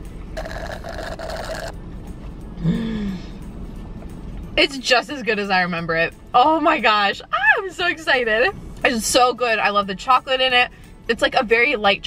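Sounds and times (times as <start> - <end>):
sucking through a straw: 0.4 - 1.7.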